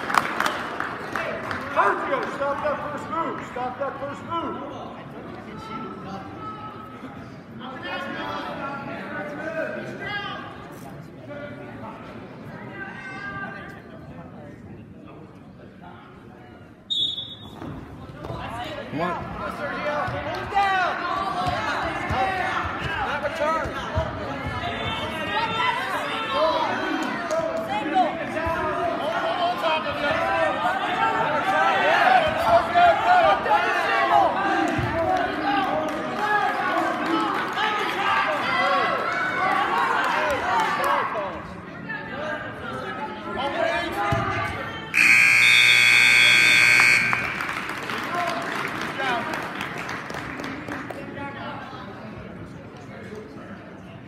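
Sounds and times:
spectators shouting and cheering: 43.9 - 48.4
electronic scoreboard buzzer: 45.0 - 47.6.

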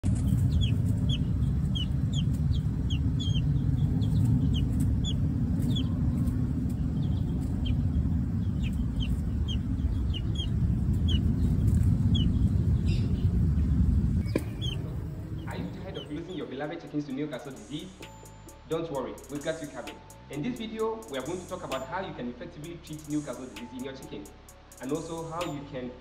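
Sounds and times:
chick peeping: 0.0 - 16.5
steady low rumble: 0.0 - 26.0.

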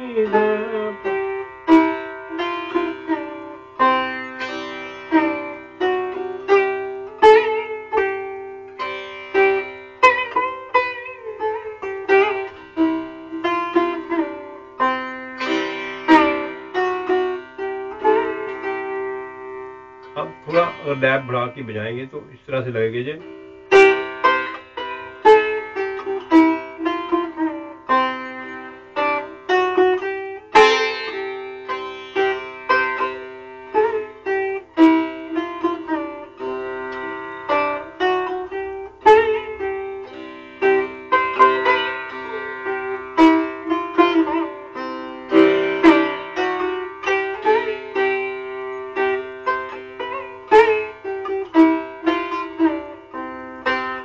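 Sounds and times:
sitar playing: 0.0 - 54.0.

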